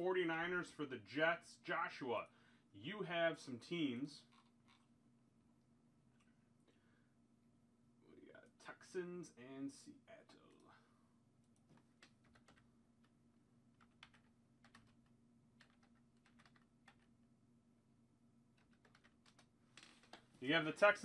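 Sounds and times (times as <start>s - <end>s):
low steady hum: 0.0s - 21.0s
typing on computer keyboard: 12.0s - 12.6s, 13.8s - 17.1s, 18.6s - 19.5s.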